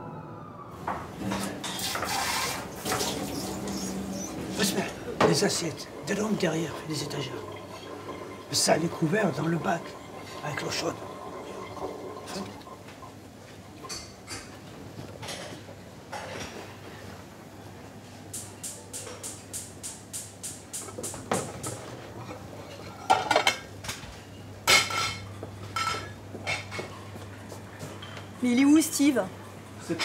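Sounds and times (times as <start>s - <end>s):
dishes and cutlery clattering: 21.0s - 23.7s, 24.7s - 27.1s.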